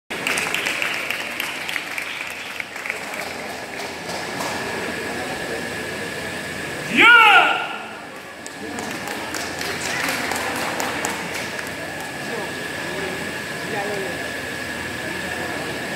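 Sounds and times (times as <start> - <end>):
scattered clapping: 0.1 - 4.8, 8.4 - 12.5
crowd noise: 0.1 - 15.9
man shouting: 6.9 - 8.0.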